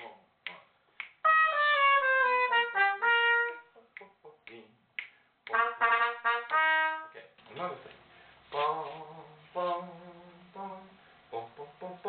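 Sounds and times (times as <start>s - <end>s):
finger snaps: 0.0s - 1.2s, 3.9s - 5.6s
trumpet short notes: 1.2s - 3.8s, 5.5s - 7.7s.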